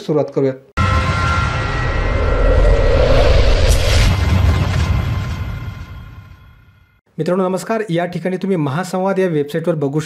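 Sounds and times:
deep rumbling whoosh: 0:00.8 - 0:07.0.

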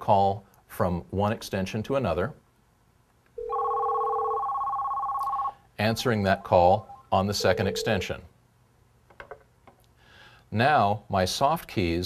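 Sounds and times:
electronic desk phone ringing: 0:03.4 - 0:05.6, 0:06.8 - 0:08.1.

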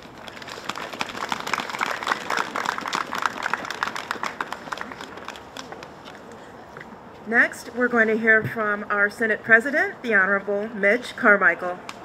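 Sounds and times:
audience applauding: 0:00.3 - 0:05.4.

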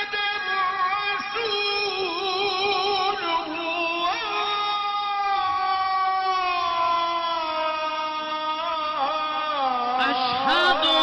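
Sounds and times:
person chanting a long note: 0:06.5 - 0:11.0.

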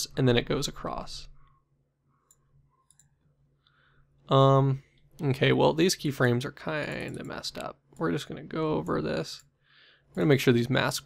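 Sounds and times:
faint mouse clicks: 0:02.2 - 0:03.8.

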